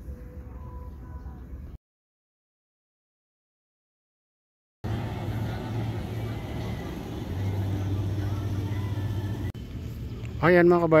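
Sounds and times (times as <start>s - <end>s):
vehicle engine humming: 4.8s - 10.4s.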